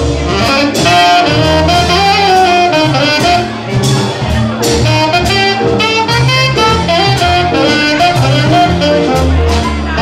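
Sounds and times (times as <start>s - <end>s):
low bass notes: 0.0s - 10.0s
saxophone jazz solo: 0.0s - 10.0s.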